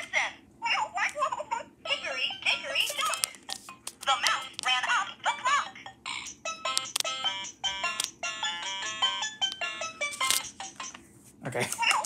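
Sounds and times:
toy playing beeping melody: 1.8 - 3.4, 5.2 - 11.0.

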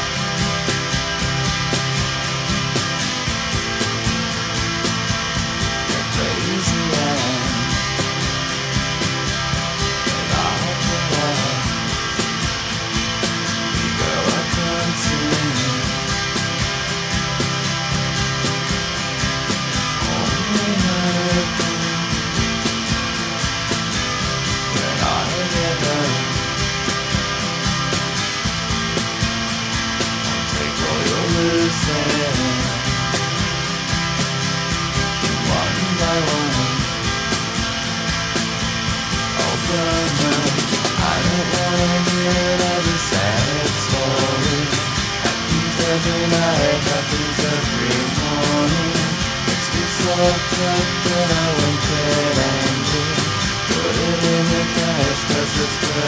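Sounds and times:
band beat: 0.0 - 56.0
downward gliding guitar line: 0.0 - 56.0
electric guitars: 0.0 - 56.0
indie rock instrumental: 0.0 - 56.0.

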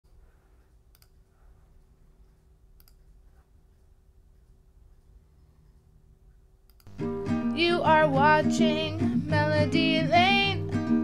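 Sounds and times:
faint room hum: 0.1 - 11.0.

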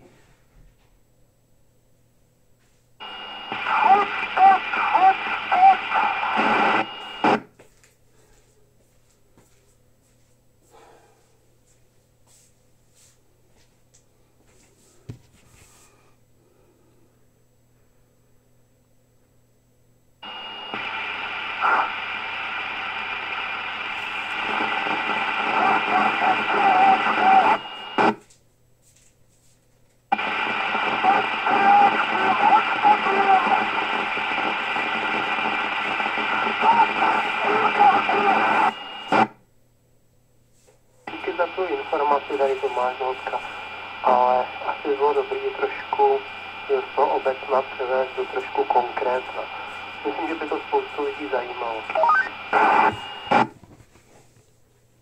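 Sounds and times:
hissy radio speech: 3.0 - 7.4, 20.2 - 28.2, 30.1 - 39.3, 41.1 - 53.5
radio squelch click: 3.1 - 7.4, 20.3 - 28.2, 30.1 - 39.3, 41.1 - 53.5.

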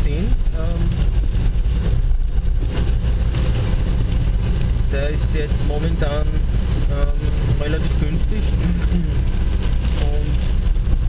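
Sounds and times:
car engine and road rumble: 0.0 - 11.0
tyres hissing on wet road: 0.0 - 11.0.

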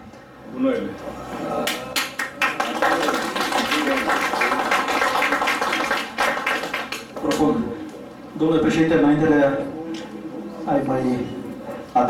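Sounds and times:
audience applauding: 1.6 - 7.5.

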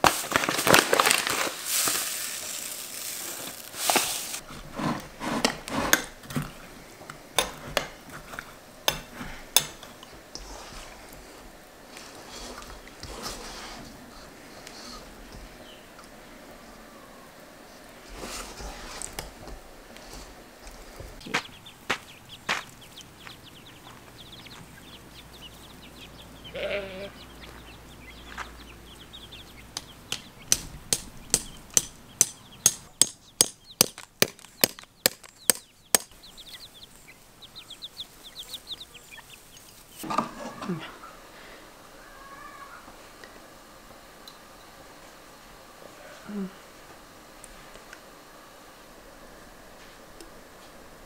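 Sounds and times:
chickens calling: 0.7 - 4.5, 8.5 - 44.9
sharp evenly spaced knocks: 21.2 - 24.0, 29.6 - 36.6.

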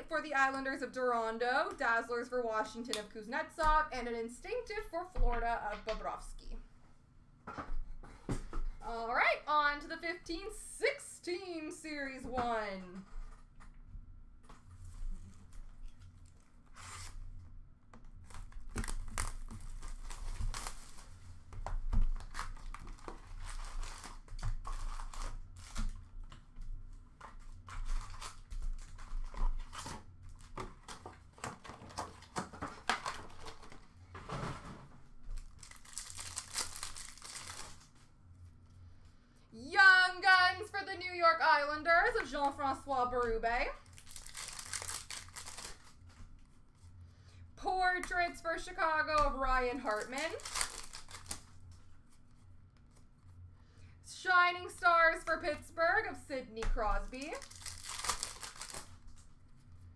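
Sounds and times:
foil wrapper crinkling and tearing: 18.2 - 21.3, 22.2 - 26.1, 35.4 - 38.0, 43.8 - 46.3, 49.7 - 51.7, 57.0 - 59.3
person speaking: 39.6 - 43.8, 47.6 - 50.5, 54.1 - 57.5.

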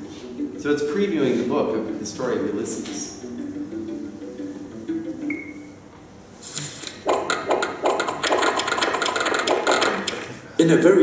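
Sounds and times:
noisy clicking rattle: 6.6 - 10.3.

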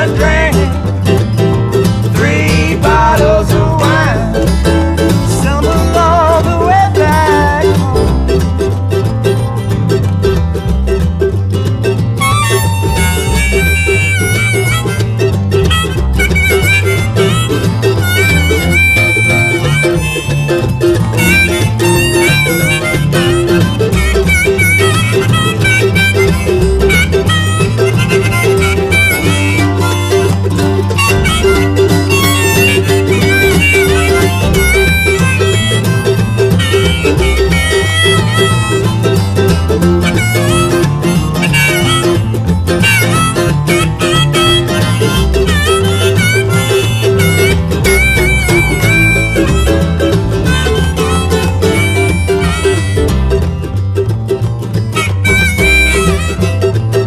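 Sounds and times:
acoustic guitar: 0.0 - 57.0
mandolin: 0.0 - 57.0
upright bass: 0.0 - 57.0.

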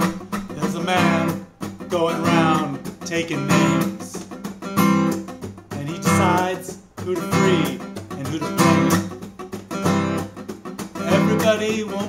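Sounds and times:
man singing: 0.0 - 4.4, 5.7 - 9.2, 11.0 - 12.0
acoustic guitar strumming: 0.0 - 12.0.

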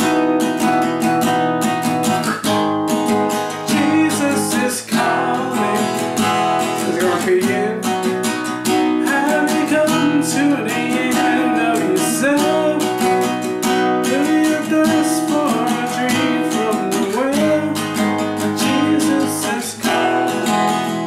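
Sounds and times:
acoustic guitar strumming: 0.0 - 21.0.

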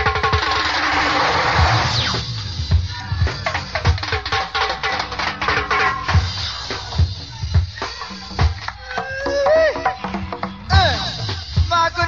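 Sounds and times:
live go-go band music: 0.0 - 12.0.

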